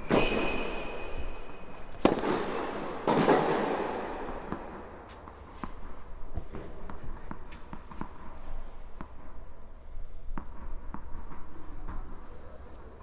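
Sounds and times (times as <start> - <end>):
tennis racket hitting ball: 0.0 - 9.2
ball bouncing: 1.8 - 9.4, 10.2 - 12.1.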